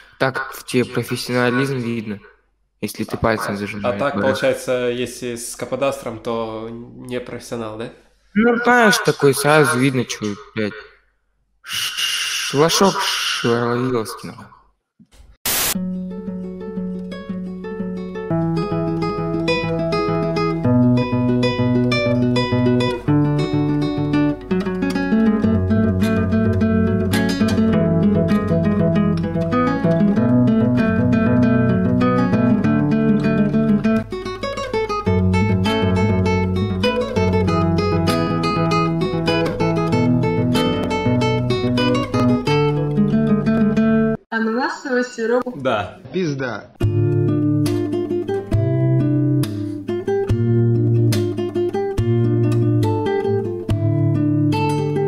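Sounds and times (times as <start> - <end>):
fingerstyle acoustic guitar: 15.8 - 44.2, 46.8 - 55.0.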